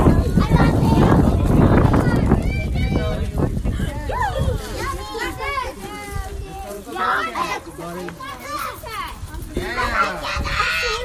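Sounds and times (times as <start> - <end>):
children shouting and chattering: 0.0 - 11.0.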